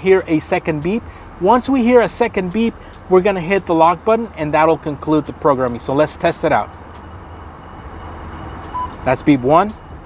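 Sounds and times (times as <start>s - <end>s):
short seat beep: 8.3s - 9.1s.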